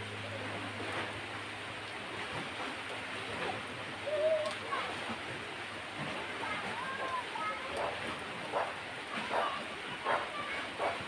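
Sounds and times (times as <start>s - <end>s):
rain falling on foliage: 1.1s - 10.8s
short wavering call: 4.0s - 4.5s.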